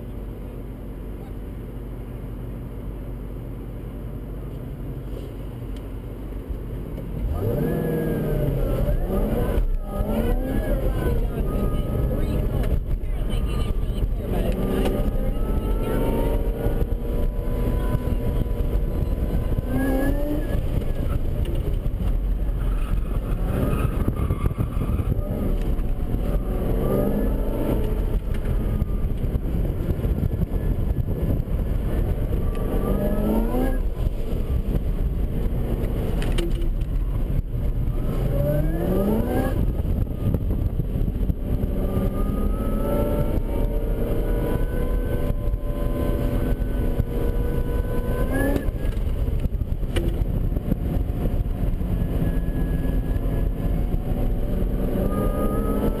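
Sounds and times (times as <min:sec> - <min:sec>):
car engine revving: 0:07.0 - 0:56.0.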